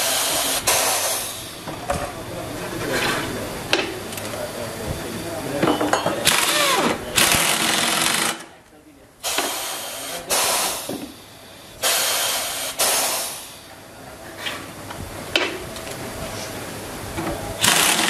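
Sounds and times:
pneumatic impact wrench hammering: 0.0 - 1.3, 6.2 - 8.5, 9.2 - 11.1, 11.8 - 13.4, 17.6 - 18.0.

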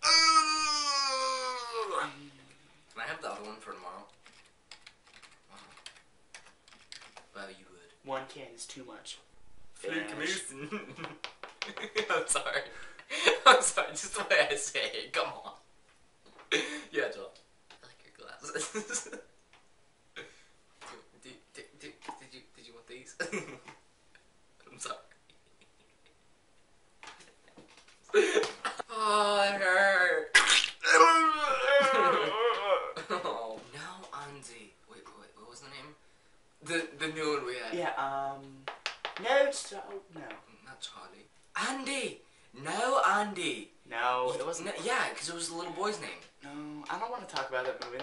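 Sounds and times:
typing on computer keyboard: 4.1 - 7.2.

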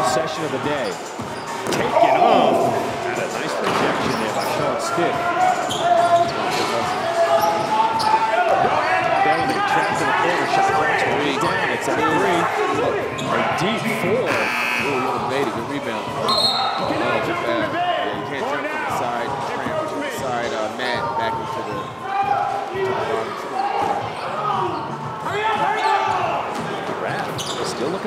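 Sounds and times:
voices in a large hall: 0.0 - 28.0.

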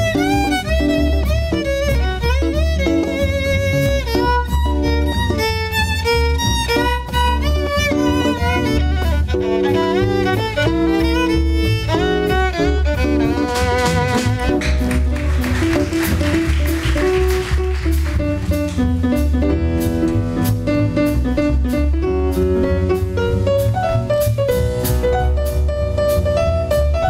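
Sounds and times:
violins playing melody: 0.0 - 18.9
double bass pulsing: 0.0 - 27.0.

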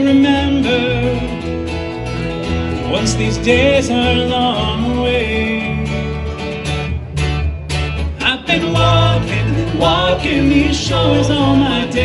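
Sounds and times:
strummed acoustic guitar: 0.0 - 12.0
upright bass: 0.0 - 12.0
person singing: 8.2 - 12.0.

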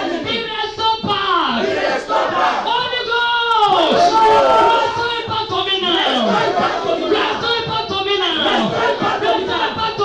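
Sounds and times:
crowd praying aloud: 0.0 - 10.0
woman shouting prayer into microphone: 2.6 - 6.6.

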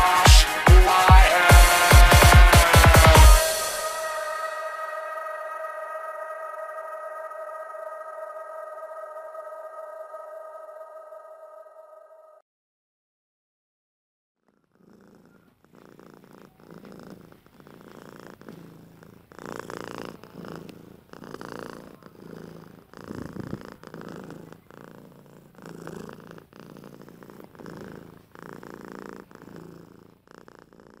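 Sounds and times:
cat purring: 14.4 - 31.0.

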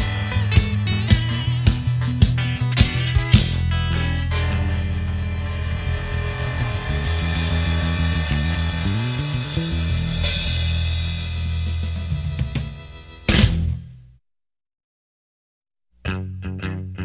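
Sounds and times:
drums with cymbal crashes: 0.0 - 3.7, 4.4 - 13.8
walking bass line: 0.0 - 14.0
sustained guitar chord: 2.4 - 13.3.

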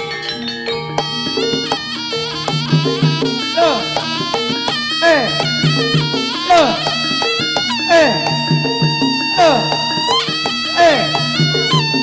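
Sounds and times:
metallophone and gong tones: 0.0 - 12.0
shrill reed wind instrument: 1.0 - 12.0.

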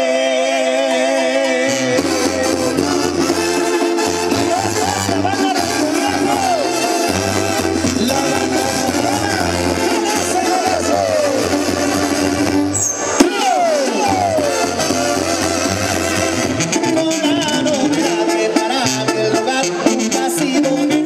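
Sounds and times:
brass band playing live: 0.0 - 21.0
tuba bass line: 0.0 - 21.0.

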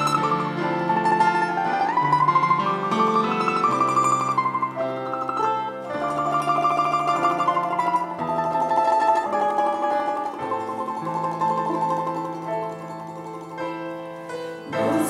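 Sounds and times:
mandolin melody: 0.0 - 15.0.

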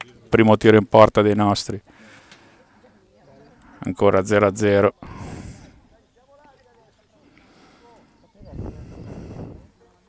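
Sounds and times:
distant voices calling out: 1.8 - 10.0
low rumble on microphone: 8.4 - 9.8.

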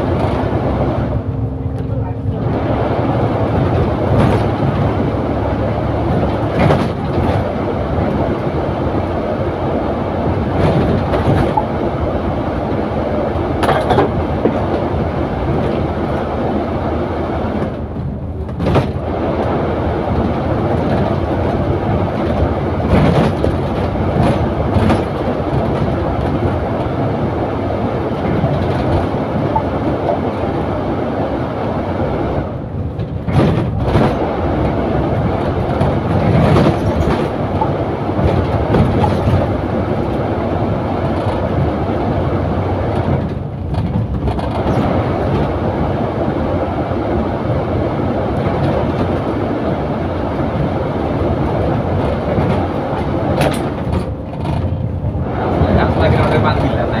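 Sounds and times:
bus engine and road noise: 0.0 - 57.0
knocks and rattles: 17.6 - 19.0, 22.2 - 26.6, 32.9 - 34.2, 35.4 - 39.6, 42.9 - 45.6.

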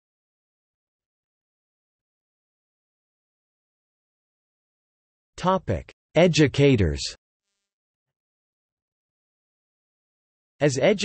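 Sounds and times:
synthesized voice: 10.6 - 11.0.

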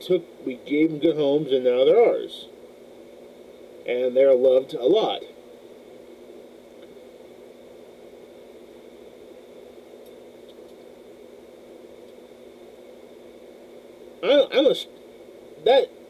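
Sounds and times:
faint electrical hum: 0.0 - 16.0
low even hiss: 0.0 - 16.0.

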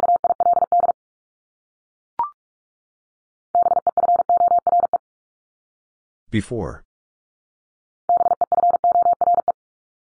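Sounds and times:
morse code tone: 8.1 - 9.6.

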